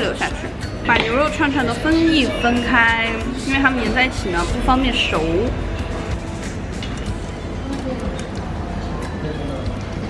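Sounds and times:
background music: 0.0s - 10.0s
faint voices talking: 0.0s - 10.0s.

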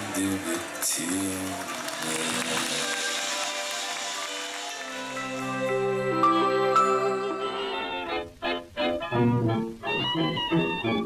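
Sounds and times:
live band music: 2.0s - 11.0s.

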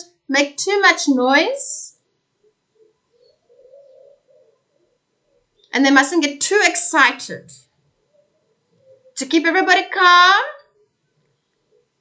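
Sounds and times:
faint bird cooing: 2.2s - 5.8s, 7.7s - 9.4s, 10.5s - 12.0s.

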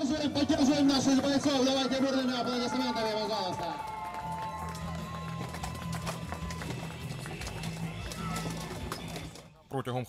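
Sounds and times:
music: 0.0s - 9.6s.

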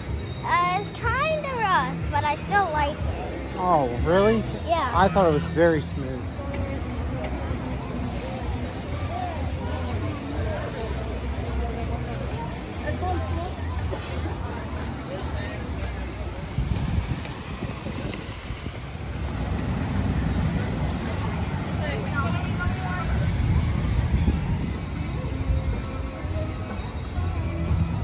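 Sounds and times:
faint background music: 0.0s - 28.0s
voices of passers-by: 0.0s - 28.0s
steady low rumble: 13.8s - 28.0s.

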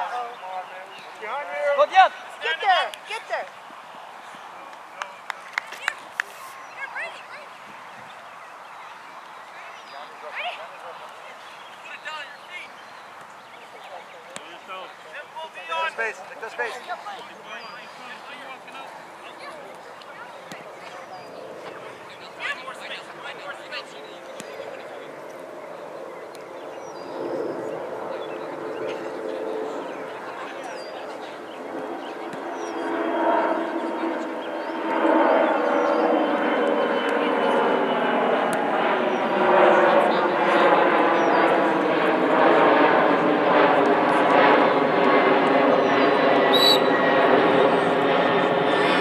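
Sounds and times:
airplane engine drone: 22.9s - 49.0s.

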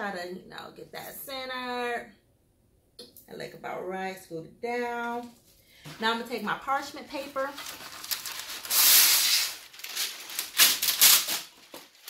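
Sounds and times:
parchment paper tearing and crinkling: 7.2s - 12.0s.

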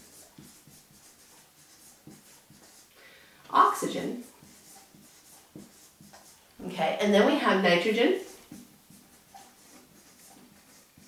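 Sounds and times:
marker writing on a board: 0.0s - 2.9s, 3.6s - 11.0s.

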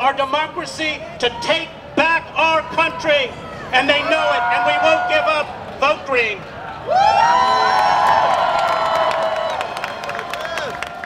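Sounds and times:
crowd cheering and whooping: 2.6s - 5.8s, 6.4s - 11.0s
scattered clapping: 5.6s - 11.0s.

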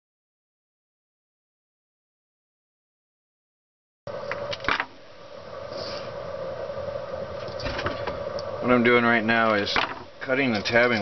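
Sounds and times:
low hum and hiss: 4.1s - 11.0s.

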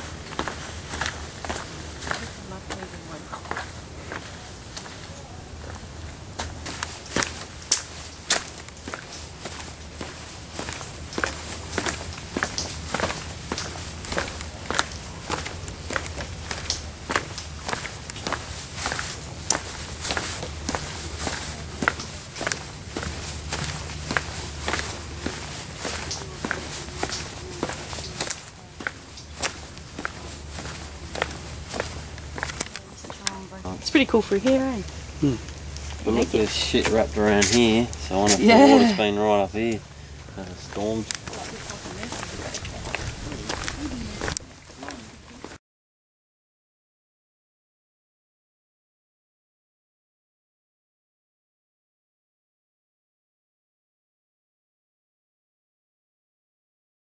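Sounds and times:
footsteps on wooden boardwalk: 0.0s - 45.6s
steady low rumble: 0.0s - 45.6s.

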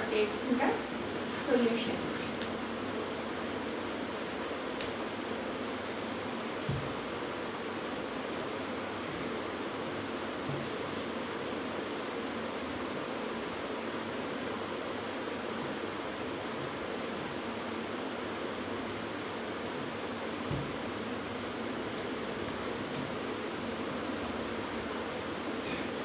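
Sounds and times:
room noise hiss: 0.0s - 26.0s.

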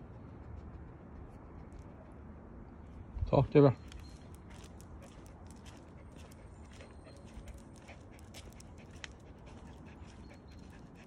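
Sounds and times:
dog paws clicking on asphalt: 3.8s - 11.0s.

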